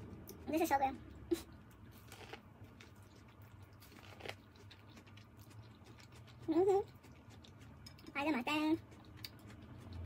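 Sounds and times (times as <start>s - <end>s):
chewing corn crunching: 0.0s - 10.0s.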